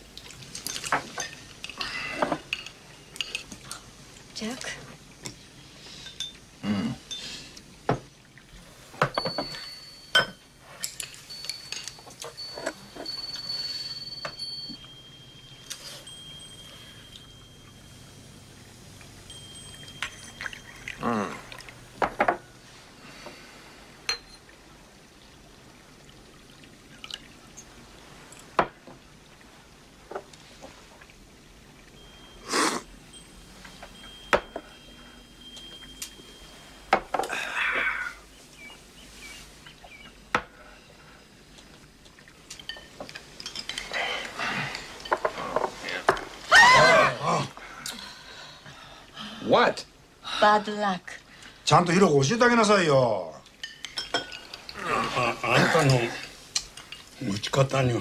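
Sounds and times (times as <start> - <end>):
noisy eating: 15.6 - 23.8, 30.4 - 49.2, 53.4 - 57.7.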